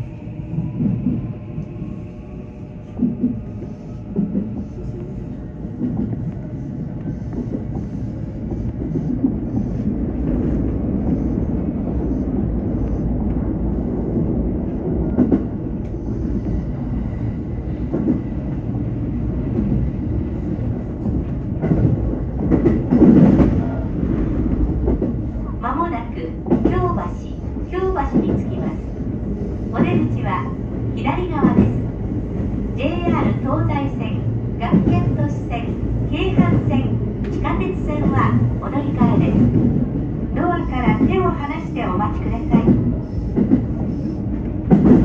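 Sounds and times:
heavy train clatter: 0.0s - 45.0s
train wheels rumbling on rail: 0.0s - 45.0s.

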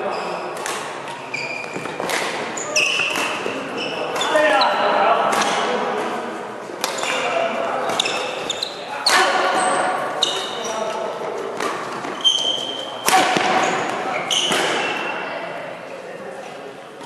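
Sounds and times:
shoe squeaks on court: 0.0s - 4.9s, 6.9s - 11.0s, 12.0s - 15.3s
rackets hitting shuttlecock: 0.5s - 4.5s, 5.2s - 6.2s, 6.8s - 10.6s, 11.4s - 15.1s.

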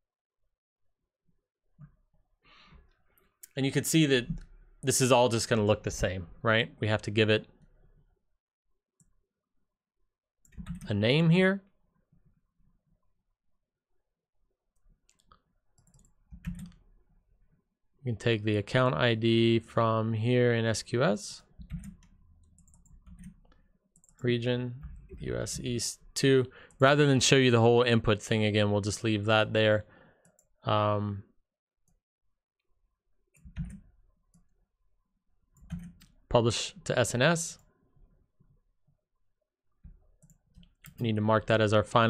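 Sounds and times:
keyboard and mouse clicks: 10.4s - 10.9s, 14.8s - 16.8s, 21.6s - 24.2s, 33.3s - 34.5s, 35.5s - 36.2s, 39.8s - 41.1s.

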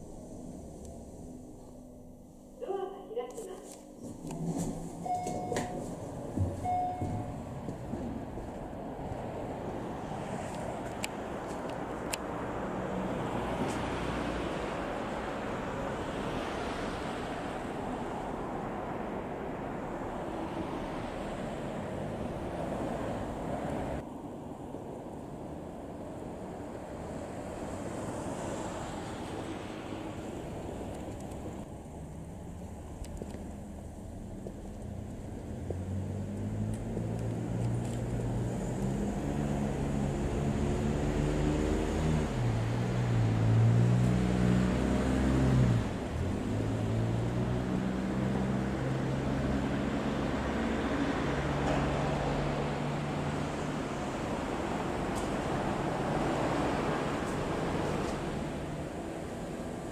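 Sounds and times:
road traffic: 0.0s - 59.9s
motor vehicle engine revving: 34.9s - 53.8s.

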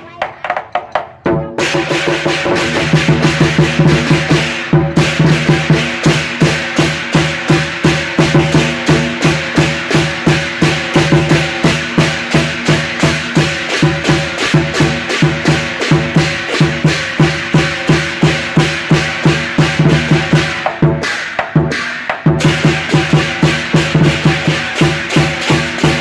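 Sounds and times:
drum beating steadily: 0.0s - 26.0s
hand cymbals clashing: 1.6s - 26.0s.

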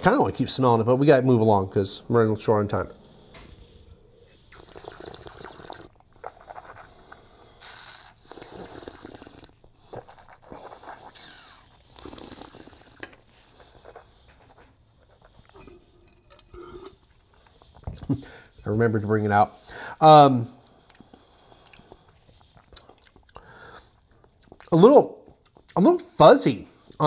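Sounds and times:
wine slurping and swishing: 4.4s - 14.0s.

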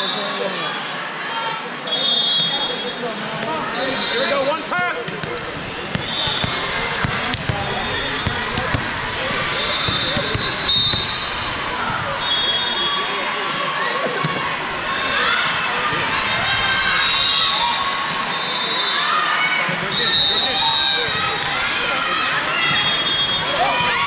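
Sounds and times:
many voices overlapping: 0.0s - 24.0s
referee whistle blasts: 1.9s - 3.0s, 5.9s - 6.6s, 9.4s - 13.2s, 17.0s - 19.1s, 19.9s - 21.4s, 22.6s - 24.0s
volleyballs hit and bouncing: 5.0s - 12.2s, 14.1s - 14.6s.

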